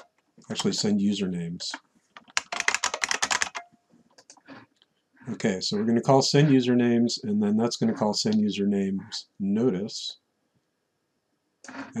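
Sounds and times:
typing on computer keyboard: 1.6 - 4.4.

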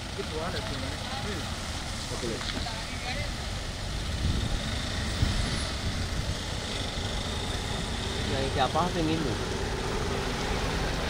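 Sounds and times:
low engine rumble: 0.0 - 11.0
tyre hiss on wet road: 1.0 - 8.2.

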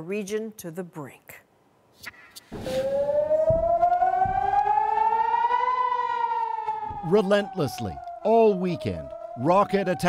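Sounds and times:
low thumps: 2.5 - 9.4
air-raid siren wailing: 2.6 - 10.0.

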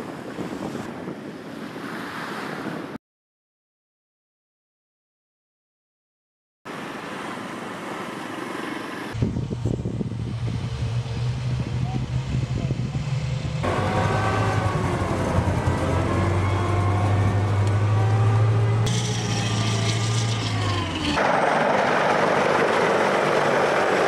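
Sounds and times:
diesel engines droning: 6.7 - 24.0.

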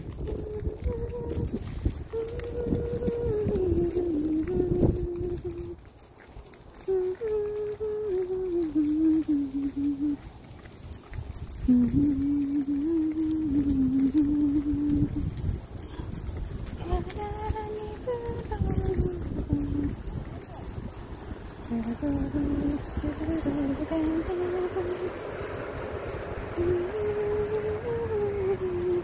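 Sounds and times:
person humming: 0.0 - 5.8, 6.8 - 10.2, 11.6 - 16.2, 16.8 - 20.1, 21.6 - 25.2, 26.5 - 29.0.

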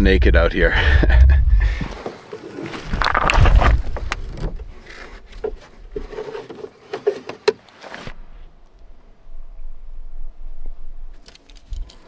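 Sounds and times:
rope and gear rustling: 1.8 - 8.2.

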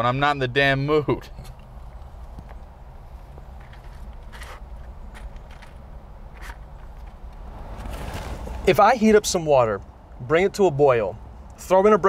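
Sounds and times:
soft rustles: 1.4 - 8.7.

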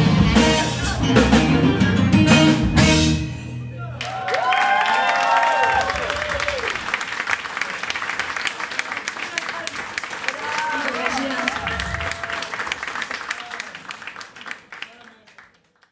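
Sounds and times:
voices whooping and calling out: 4.0 - 6.7, 10.3 - 12.7
audience applauding: 4.0 - 15.9.

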